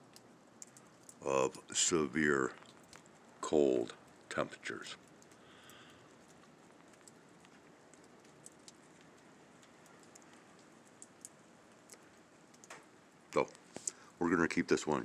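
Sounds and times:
faint steady hiss: 0:00.0 - 0:15.0
soft ticks: 0:00.1 - 0:01.2, 0:02.6 - 0:03.2, 0:05.0 - 0:12.9.

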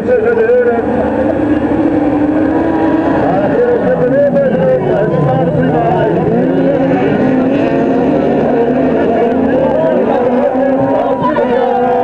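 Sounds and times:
race car engines racing past: 0:00.0 - 0:12.0.

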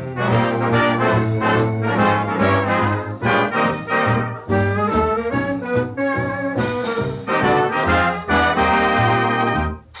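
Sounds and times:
big band swing music with brass: 0:00.0 - 0:09.8.

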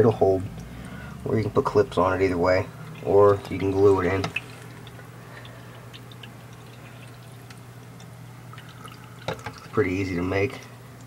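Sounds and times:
filter motor hum: 0:00.0 - 0:11.0
water trickling and splashing: 0:00.0 - 0:11.0.

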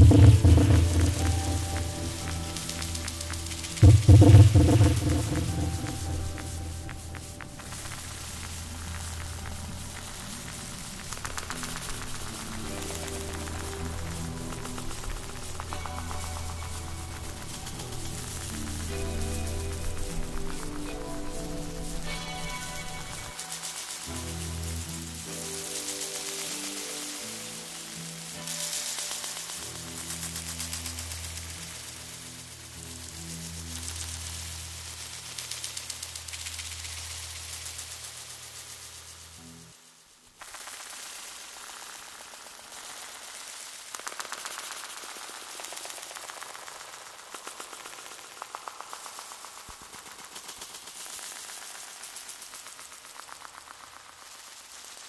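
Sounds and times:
deep sustained bass chords: 0:00.0 - 0:23.3
crackling hissing texture: 0:00.0 - 0:55.0.

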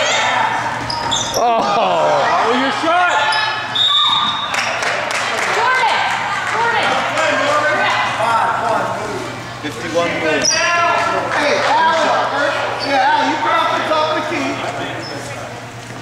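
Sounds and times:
indistinct voices echoing in gym: 0:00.0 - 0:15.8.

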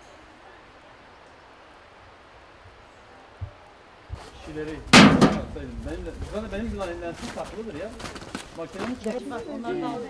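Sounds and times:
faint outdoor background hiss: 0:00.0 - 0:10.0
low thump: 0:04.9 - 0:05.7.

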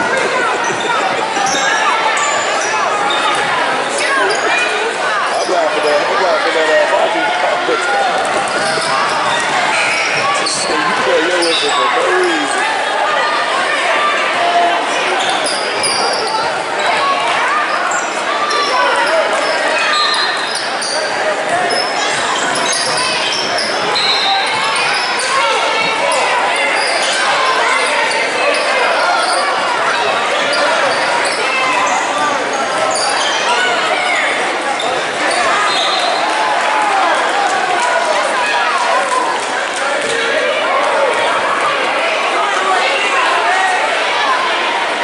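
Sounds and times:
crowd voices talking: 0:00.0 - 0:45.0.

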